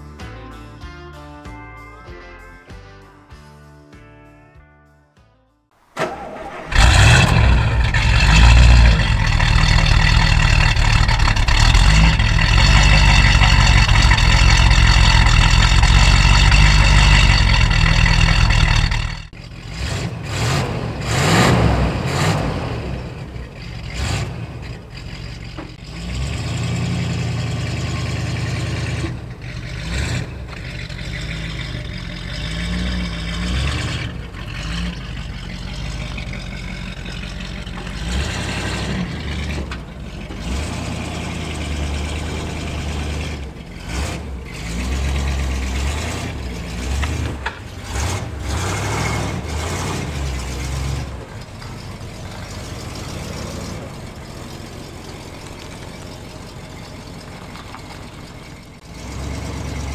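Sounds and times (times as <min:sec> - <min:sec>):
car engine starting and running: 0:05.8 - 0:59.9.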